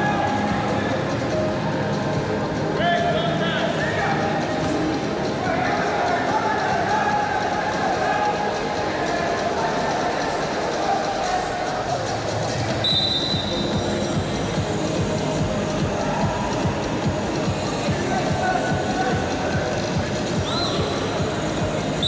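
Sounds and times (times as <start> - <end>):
din of voices in arena: 0.0 - 22.0
referee's whistle blast: 12.8 - 13.7
short rising whistle toot: 12.8 - 13.7.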